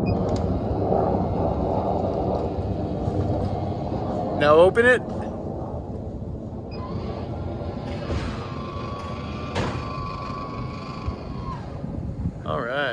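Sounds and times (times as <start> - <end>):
steady low rumble: 0.0 - 12.9
motor whine: 6.6 - 12.5.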